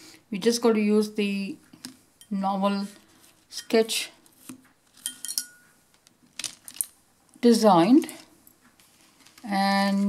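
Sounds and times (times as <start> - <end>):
pens clinking on tabletop: 5.0 - 5.7.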